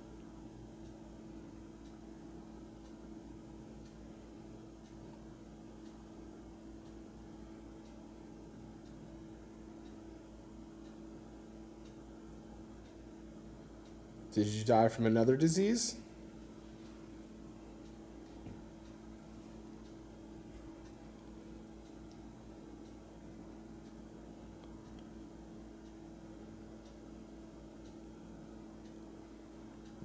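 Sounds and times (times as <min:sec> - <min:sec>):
low electrical hum: 0:00.0 - 0:30.0
faint ticks: 0:23.8 - 0:30.0.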